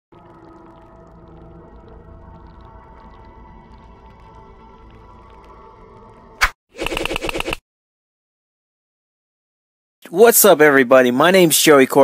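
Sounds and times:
droning music of sustained tones: 0:00.1 - 0:06.4
low rumble: 0:00.1 - 0:06.4.

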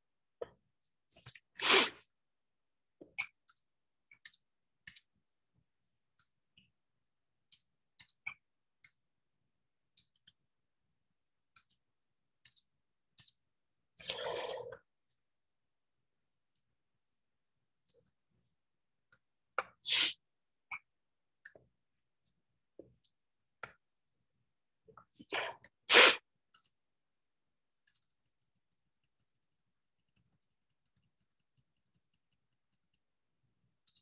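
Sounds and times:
small clicks and taps: 0:03.0 - 0:05.2, 0:06.1 - 0:06.8, 0:07.4 - 0:09.1, 0:09.9 - 0:10.5, 0:11.4 - 0:13.5, 0:17.8 - 0:18.3, 0:20.7 - 0:25.2, 0:26.4 - 0:26.8, 0:27.7 - 0:34.0.

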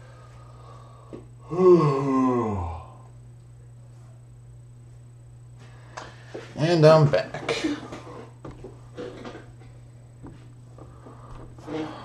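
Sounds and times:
person groaning while stretching: 0:01.4 - 0:03.0.

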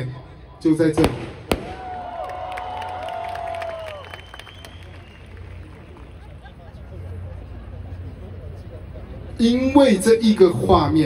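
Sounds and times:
firework bang: 0:01.0 - 0:02.0.

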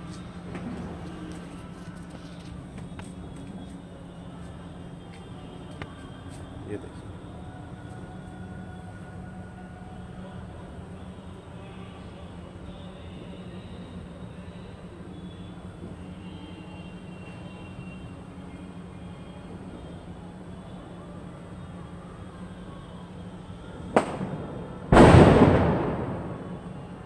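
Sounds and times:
rumble after bang: 0:24.0 - 0:26.8
firecracker bangs: 0:24.0 - 0:26.9.

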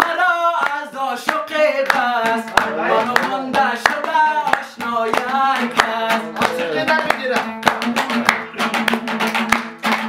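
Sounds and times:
man singing: 0:00.0 - 0:09.2
hand claps: 0:00.0 - 0:10.0.

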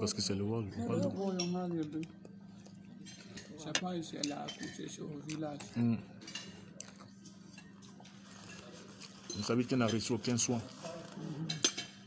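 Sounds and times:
cutlery clinking on plates: 0:03.0 - 0:04.9, 0:11.4 - 0:12.0.

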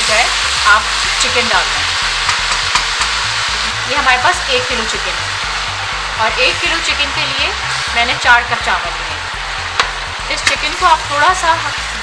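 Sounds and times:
spices sizzling in hot oil: 0:00.0 - 0:12.0.

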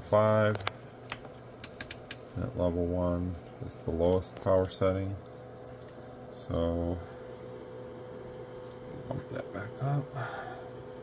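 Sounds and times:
faint steady electrical tone: 0:00.0 - 0:11.0.

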